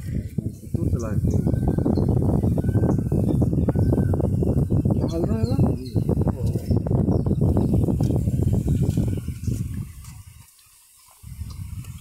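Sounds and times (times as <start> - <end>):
footsteps on metal bridge deck: 8.8 - 11.2.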